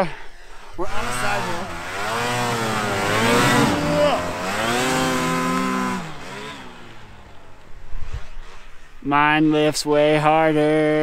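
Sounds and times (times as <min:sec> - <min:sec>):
distant snowmobile engine: 0:00.0 - 0:09.1.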